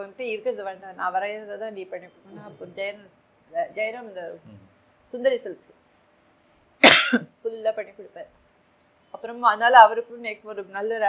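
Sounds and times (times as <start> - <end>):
woman clearing her throat: 6.8 - 7.3
woman coughing: 6.8 - 7.3.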